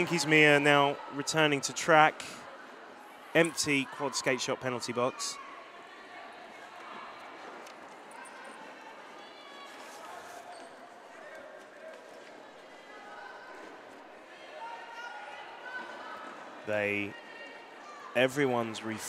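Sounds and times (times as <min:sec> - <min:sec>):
distant crowd murmur: 0:00.0 - 0:19.0.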